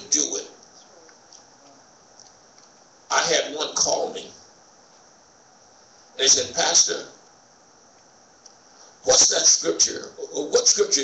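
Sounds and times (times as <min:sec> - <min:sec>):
man speaking: 0:00.0 - 0:00.6, 0:03.1 - 0:04.4, 0:06.2 - 0:07.2, 0:09.0 - 0:11.0.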